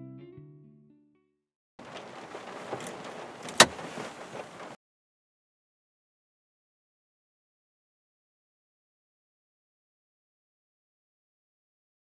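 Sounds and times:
knocks and clicks inside a car: 1.8 - 4.8.

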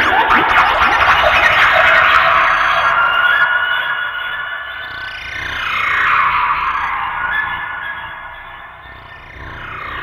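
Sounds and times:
synthesizer noise and siren tones: 1.2 - 10.0.

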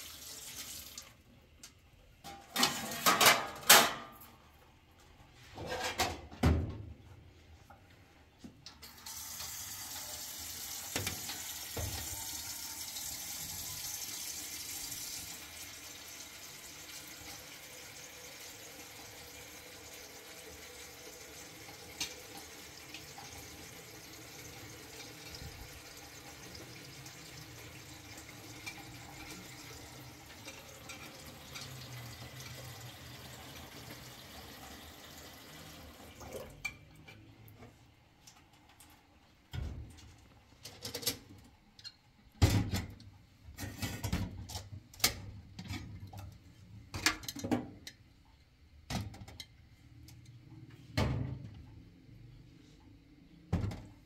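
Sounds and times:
tap water running into pot: 0.0 - 1.2, 8.8 - 36.8.

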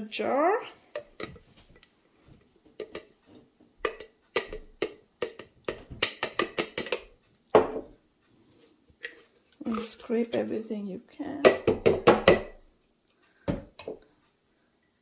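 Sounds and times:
plastic cup knocking on glass jar: 3.9 - 7.9, 11.5 - 12.6.

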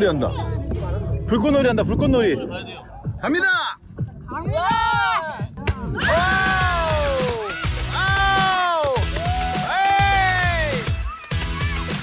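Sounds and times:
background music with low beat: 0.0 - 12.0
person exclaiming wow: 8.0 - 10.8.

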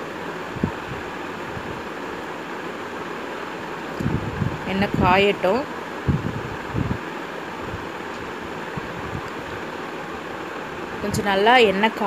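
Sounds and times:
kitchen background hiss: 0.0 - 12.0.

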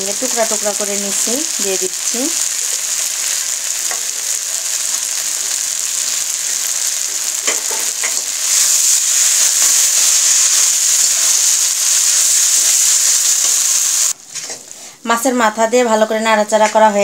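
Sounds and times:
food sizzling in a wok: 0.0 - 15.6.

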